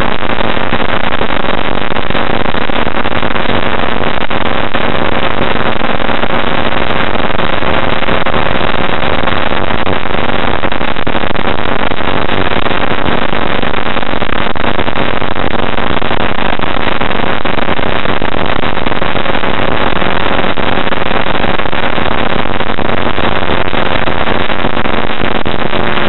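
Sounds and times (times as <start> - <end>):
rush of air noise: 0.0 - 26.0.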